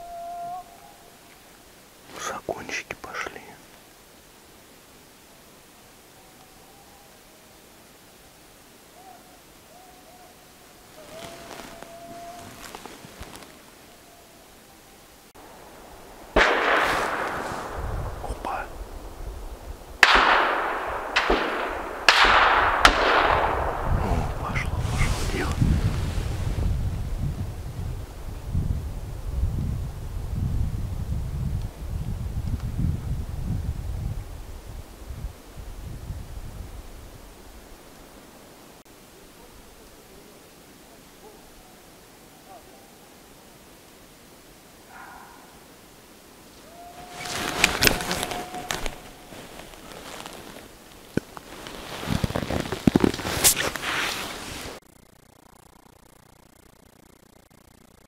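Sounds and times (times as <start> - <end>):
echoing gunshots: 16.3 - 18.2, 20.0 - 24.4.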